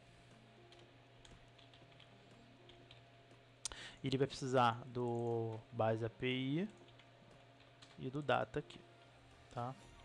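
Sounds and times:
low steady hum: 0.0s - 10.0s
faint keyboard typing: 0.3s - 9.2s.

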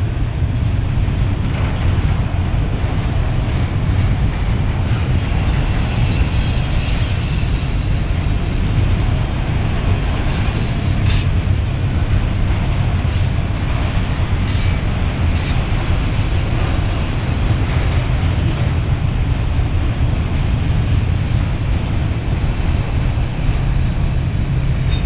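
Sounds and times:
steel wheels on rails: 0.0s - 25.0s.

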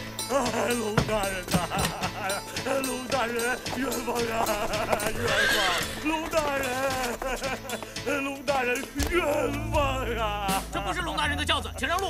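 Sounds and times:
horse whinnying: 4.9s - 6.4s.

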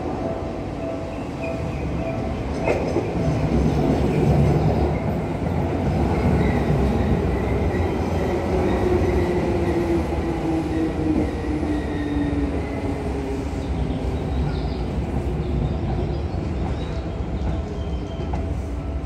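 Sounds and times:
train wheels rumbling on rails: 0.0s - 19.0s.

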